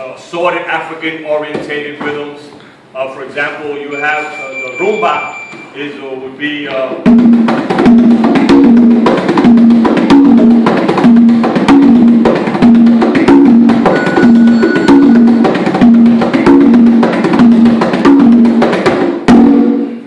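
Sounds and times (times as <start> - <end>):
congas played by hand: 1.0 - 2.4, 6.6 - 20.0.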